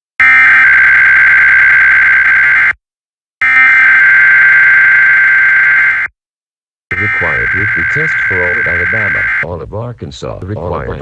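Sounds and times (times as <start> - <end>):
buzzing warbling digital tones: 3.4 - 6.1, 6.9 - 9.4.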